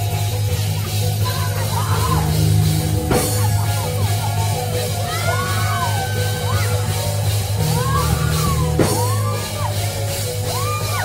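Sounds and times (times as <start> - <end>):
heavy bass guitar: 0.0 - 11.0
live church band playing: 0.0 - 11.0.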